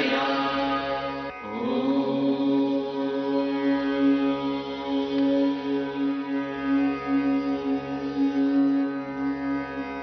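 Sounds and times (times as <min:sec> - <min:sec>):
devotional drone chant music: 0:00.0 - 0:10.0.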